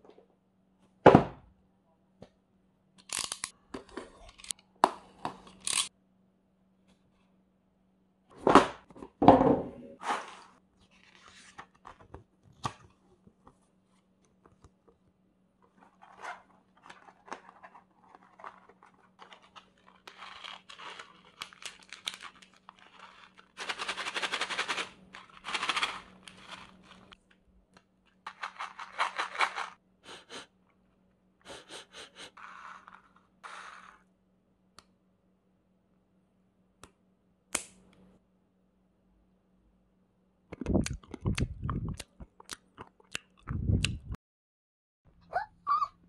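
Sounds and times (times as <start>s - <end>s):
foil pouch crinkling: 16.8s - 27.2s
foil pouch ripping open: 19.2s - 27.2s
person chewing hard pellets: 40.6s - 44.1s.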